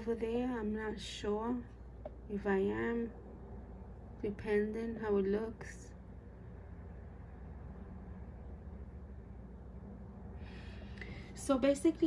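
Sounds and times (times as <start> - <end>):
low background rumble with hiss: 0.0 - 12.0.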